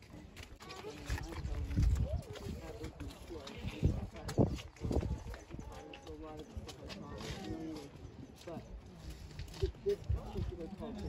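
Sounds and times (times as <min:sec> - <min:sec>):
people talking indistinctly: 0:00.2 - 0:11.0.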